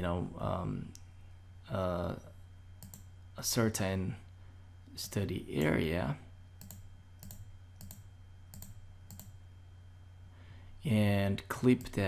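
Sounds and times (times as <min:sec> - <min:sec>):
man speaking: 0:00.0 - 0:00.9, 0:05.0 - 0:06.3, 0:10.8 - 0:12.0
low electrical hum: 0:00.0 - 0:12.0
computer mouse click: 0:02.8 - 0:03.1, 0:06.6 - 0:09.4.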